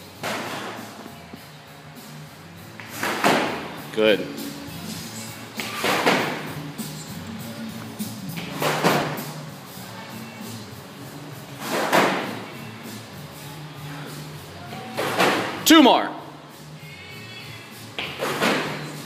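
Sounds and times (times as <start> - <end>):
heavy rope slammed on concrete: 2.8 - 3.9, 5.6 - 6.6, 11.6 - 12.5, 15.0 - 15.7, 18.0 - 19.0.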